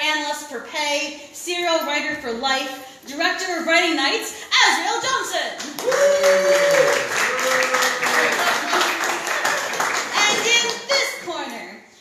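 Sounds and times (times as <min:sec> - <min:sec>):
audience clapping: 0:05.6 - 0:11.1.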